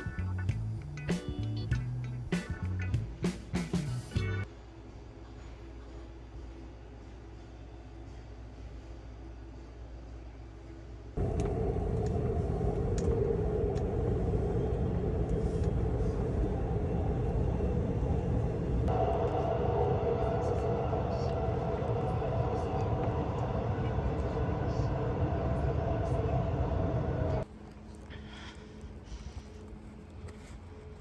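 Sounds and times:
subway train rumble: 0:00.0 - 0:31.0.

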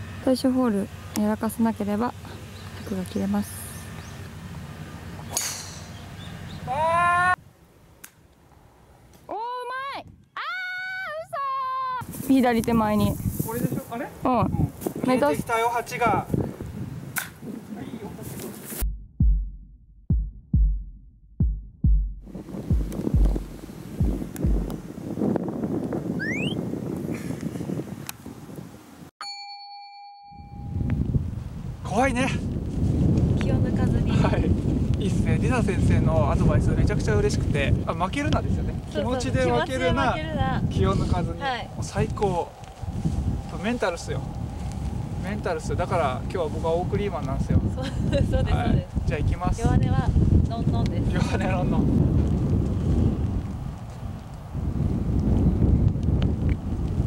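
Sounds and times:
golf ball struck off tee: 0:05.3 - 0:06.0
deep heartbeat-like thumps: 0:18.8 - 0:24.9.

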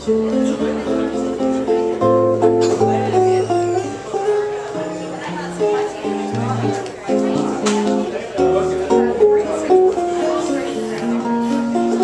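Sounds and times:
acoustic guitar bossa nova: 0:00.0 - 0:12.0.

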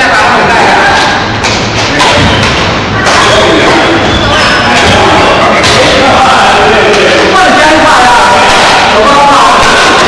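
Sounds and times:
racket striking shuttlecock: 0:01.0 - 0:03.8, 0:05.6 - 0:06.0.

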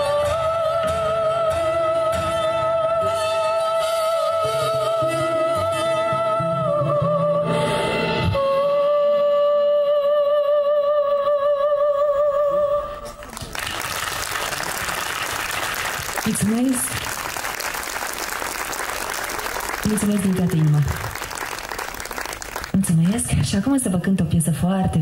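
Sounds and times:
woman singing with vibrato: 0:00.0 - 0:13.3
audience applause: 0:13.2 - 0:23.4.

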